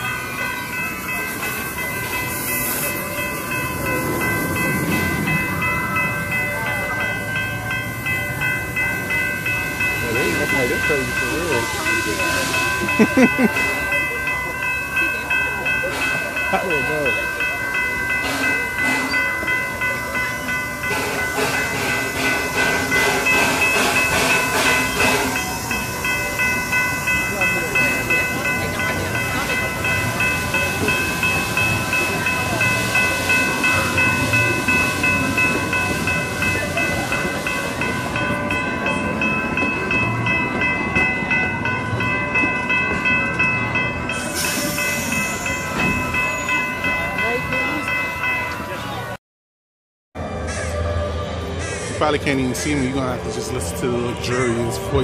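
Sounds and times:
railroad crossing bell ringing: 0.0s - 49.2s, 50.2s - 55.0s
train passing: 0.0s - 49.2s, 50.2s - 55.0s.

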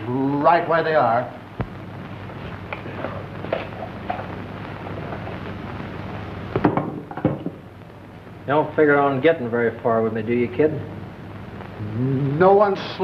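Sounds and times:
film soundtrack hiss and crackle: 0.0s - 13.0s.

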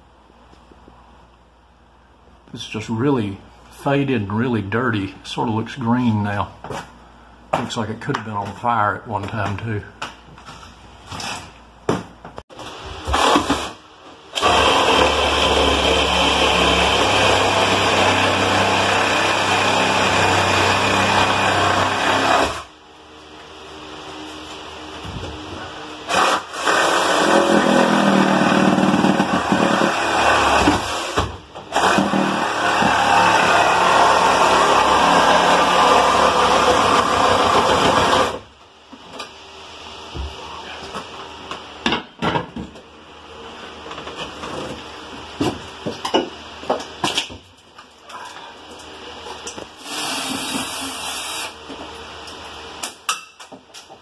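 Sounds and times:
power saw cutting plywood: 14.4s - 22.7s, 26.0s - 38.4s.

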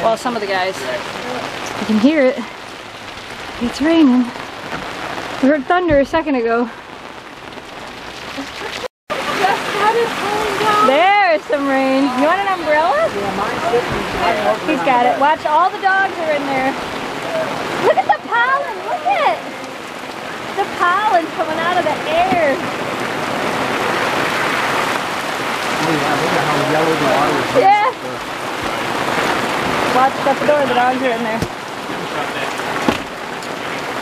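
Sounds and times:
heavy rain falling: 0.0s - 34.0s.

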